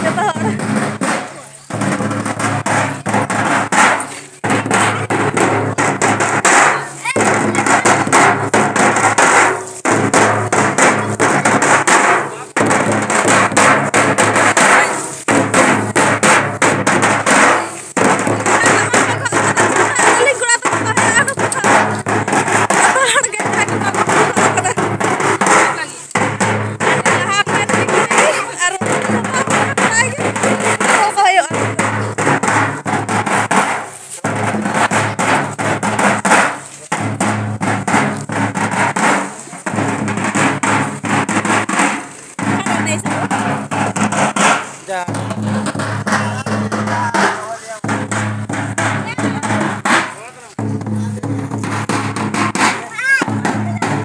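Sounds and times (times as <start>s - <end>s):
many voices: 0.0s - 8.7s, 10.3s - 12.8s, 17.1s - 33.1s, 44.8s - 54.0s
large drums beaten with sticks: 0.0s - 54.0s.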